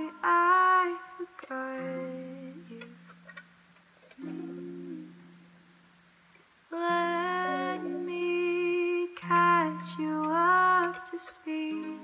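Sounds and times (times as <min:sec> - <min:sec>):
ukulele chord: 0:04.2 - 0:05.3, 0:06.9 - 0:11.0, 0:11.7 - 0:12.0.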